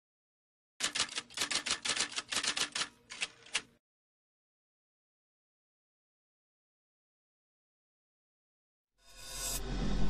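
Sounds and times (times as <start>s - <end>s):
typewriter keys clacking: 0.8s - 3.7s.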